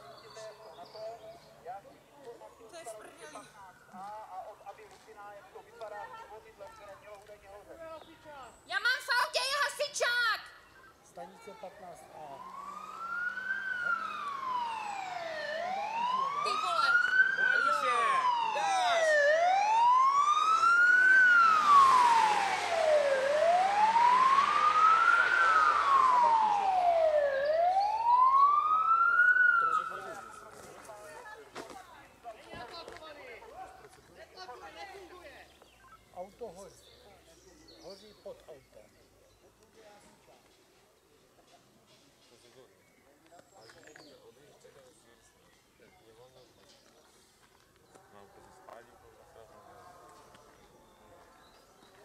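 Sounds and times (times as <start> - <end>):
emergency siren wailing: 11.6 - 30.6
car road noise: 11.9 - 30.0.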